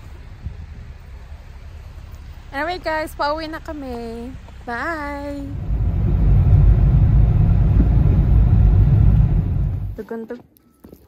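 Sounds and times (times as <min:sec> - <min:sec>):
car driving rumble from inside: 0:04.1 - 0:10.0.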